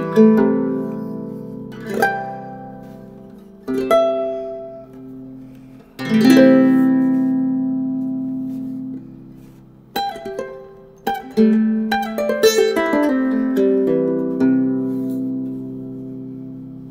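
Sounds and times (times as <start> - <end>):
ukulele played fingerstyle: 0.0 - 16.9.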